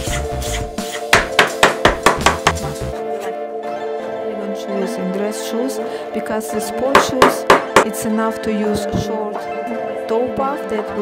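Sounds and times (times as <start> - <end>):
background music: 0.0 - 11.0
hammer tapping on plastic: 7.0 - 7.9.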